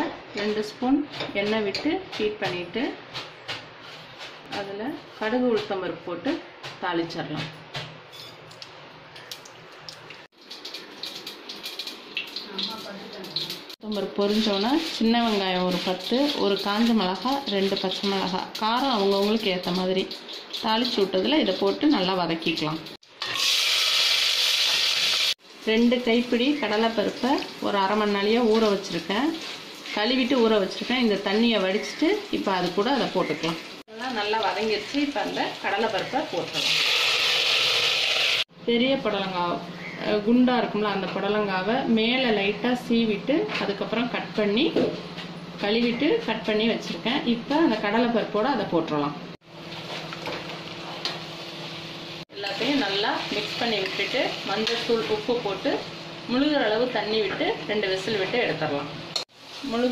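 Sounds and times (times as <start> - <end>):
shallots sizzling in hot oil: 10.4 - 38.5, 51.1 - 58.5, 59.2 - 59.9.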